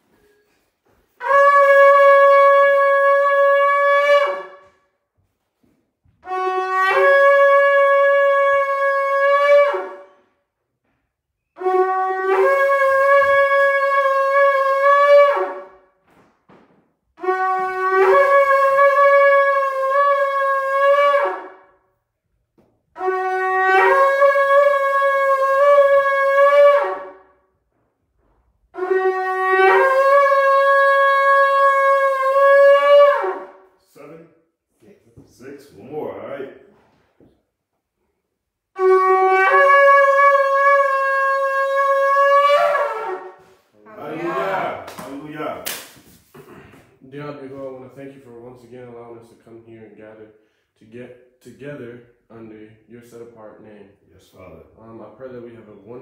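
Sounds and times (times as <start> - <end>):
shofar blasts: 0.0 - 10.5, 11.5 - 16.1, 17.1 - 22.1, 22.9 - 34.2, 38.7 - 48.8.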